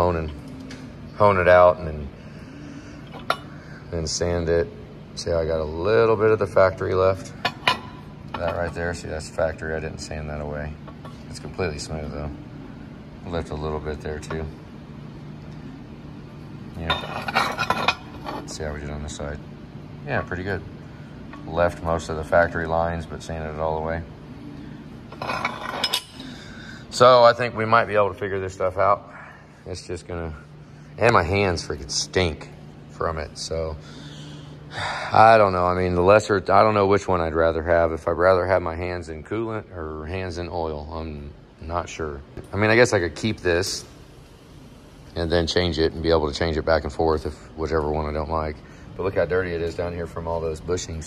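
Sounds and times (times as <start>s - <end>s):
metal rods clinking and scraping: 25.1s - 26.2s.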